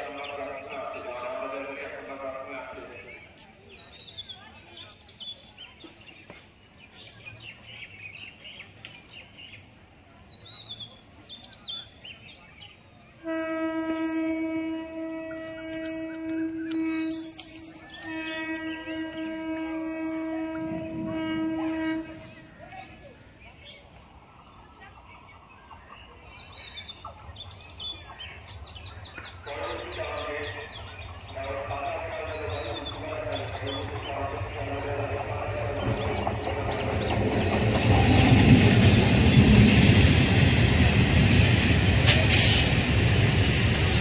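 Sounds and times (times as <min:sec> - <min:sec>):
distant train rumble: 0:00.0 - 0:07.7, 0:13.2 - 0:44.0
birds chirping: 0:00.0 - 0:44.0
train horn blast: 0:13.2 - 0:22.5, 0:31.4 - 0:37.4.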